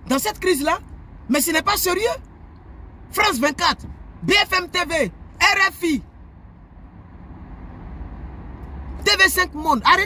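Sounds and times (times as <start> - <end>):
vehicle rumble inside cabin: 0.0 - 10.0.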